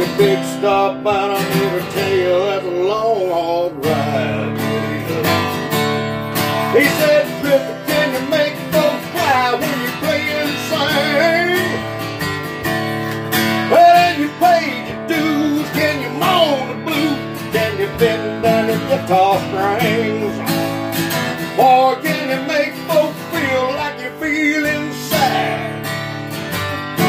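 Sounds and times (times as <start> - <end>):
acoustic guitar strumming: 0.0 - 27.0.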